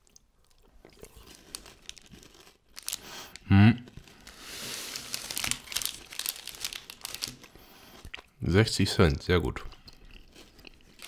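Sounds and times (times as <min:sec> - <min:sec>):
plastic wrappers crinkling: 0:01.0 - 0:08.1.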